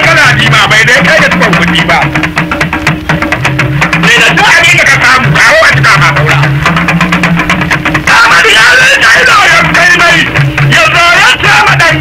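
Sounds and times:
rapid hand drum strokes: 0.0 - 12.0.

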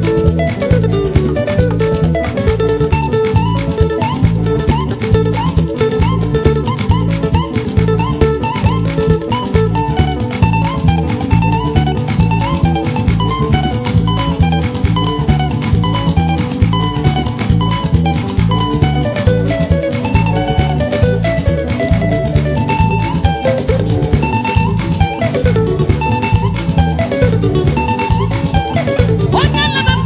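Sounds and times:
upbeat instrumental dance music: 0.0 - 30.0.

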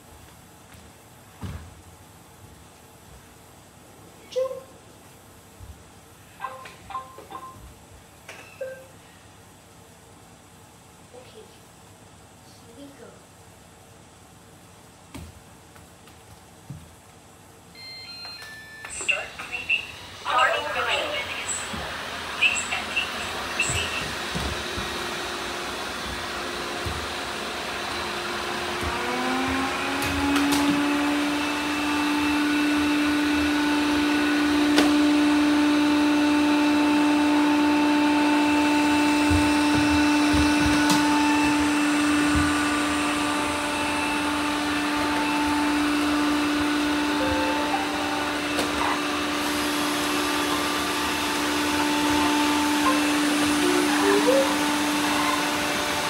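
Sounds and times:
robot vacuum cleaners running: 17.8 - 56.0.

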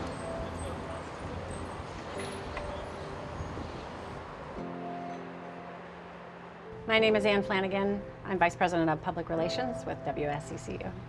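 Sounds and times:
low rumble of passing vehicles: 0.0 - 11.0.

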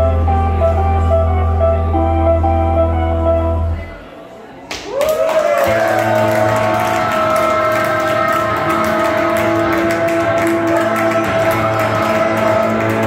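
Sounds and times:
live band music: 0.0 - 3.9
guitar: 5.7 - 13.0.

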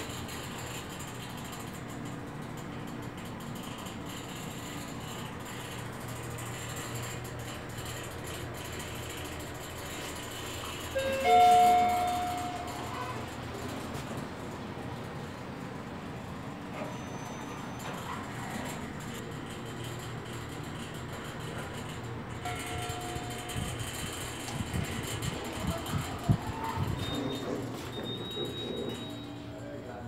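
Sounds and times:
lift hum: 0.0 - 30.0
lift arrival chime: 9.8 - 14.0, 22.4 - 30.0.

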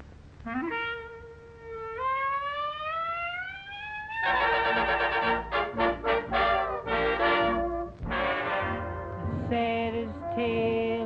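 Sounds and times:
clarinet upward glissando: 0.4 - 9.4.

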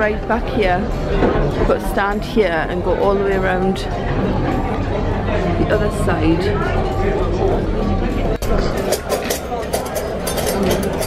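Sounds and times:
background chatter: 0.0 - 11.0
plates and cutlery clinking: 8.2 - 11.0.

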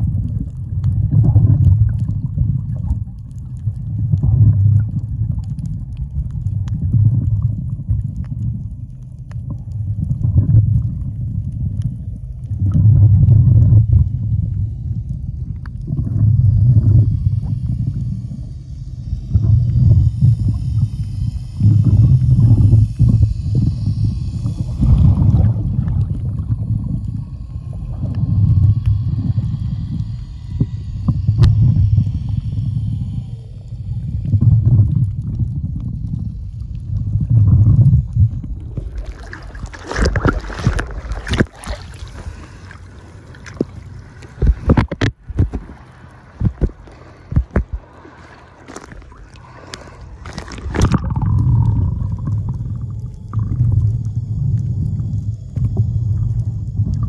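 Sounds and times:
underwater water rumble: 0.0 - 57.0
faint hiss: 13.3 - 38.5.

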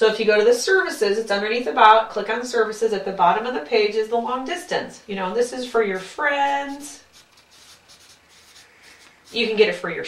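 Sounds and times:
marker scratching on paper: 5.5 - 9.6.

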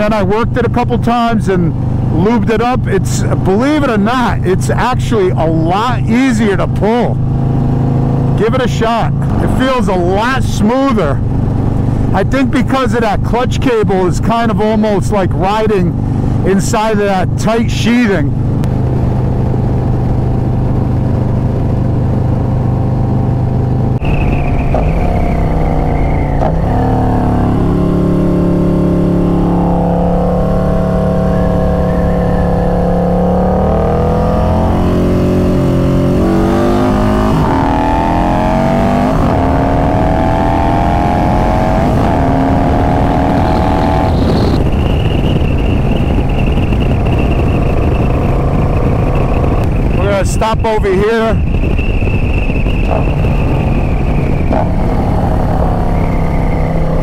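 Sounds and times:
motorcycle engine and exhaust: 0.0 - 57.0
rushing noise: 18.8 - 57.0.

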